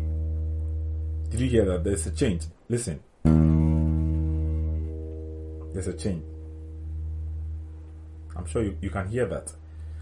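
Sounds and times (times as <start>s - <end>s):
bass guitar note plucked: 0.0s - 1.9s, 3.2s - 9.1s.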